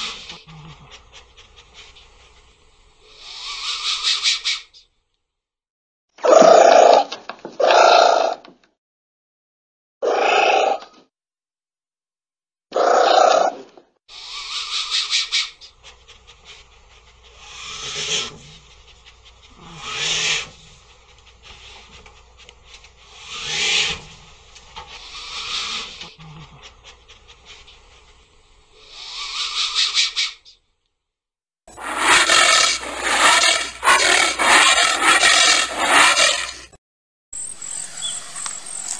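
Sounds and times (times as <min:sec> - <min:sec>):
loud hiss: 0:02.5 - 0:04.2
rustling and scratching: 0:31.7 - 0:36.7
anteater rough calls: 0:31.7 - 0:36.8.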